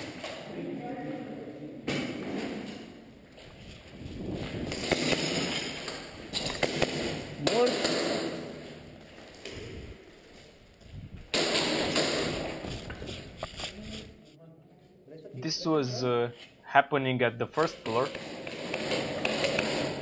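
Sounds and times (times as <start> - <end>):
footsteps on concrete: 8.7 - 11.3, 12.2 - 14.4.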